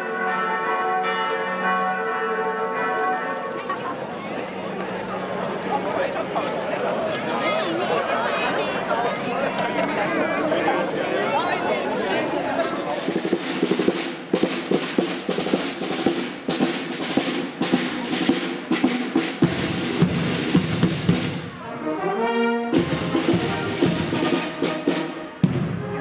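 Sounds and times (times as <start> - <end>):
brass band playing a march: 0.0 - 4.0, 7.4 - 26.0
snare drum rhythm: 13.0 - 21.4, 22.8 - 25.9.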